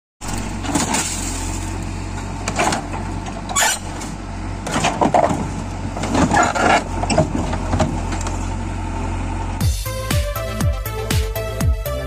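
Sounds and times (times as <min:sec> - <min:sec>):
car metal crunching and scraping: 0:00.2 - 0:08.5
diesel engine running: 0:00.2 - 0:12.0.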